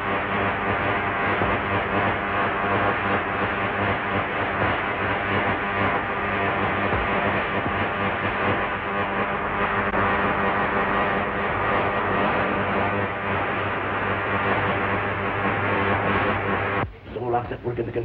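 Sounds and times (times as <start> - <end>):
electrical humming and buzzing machine: 0.0 - 18.0.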